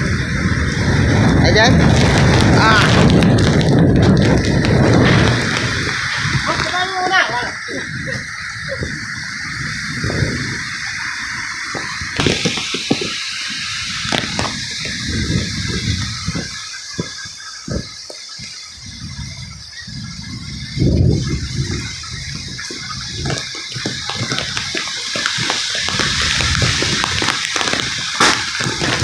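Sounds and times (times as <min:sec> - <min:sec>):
heavy rain hissing: 0:00.0 - 0:29.0
wind gusts hitting microphone: 0:00.0 - 0:29.0.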